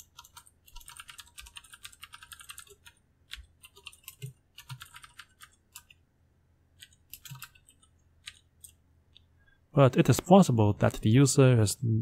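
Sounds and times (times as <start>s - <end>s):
typing on computer keyboard: 0.0s - 6.0s, 6.8s - 8.8s.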